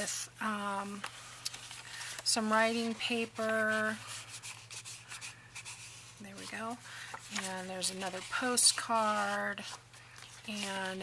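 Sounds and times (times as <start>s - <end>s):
paper rubbing and rustling: 0.9s - 11.0s.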